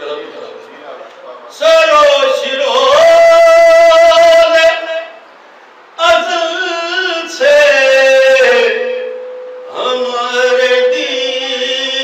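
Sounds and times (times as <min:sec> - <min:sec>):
man chanting into a microphone: 0:01.5 - 0:05.2, 0:06.0 - 0:12.0.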